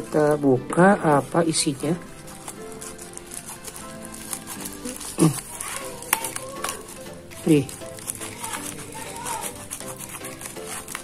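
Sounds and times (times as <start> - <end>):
background music with held tones: 0.0 - 11.0
scissors cutting plastic mailer: 1.0 - 11.0.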